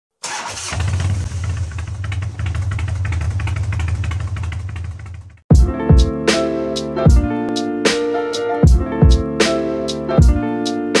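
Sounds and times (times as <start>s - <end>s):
motorcycle engine cranking: 0.2s - 5.4s
motorcycle engine idling: 0.8s - 5.4s.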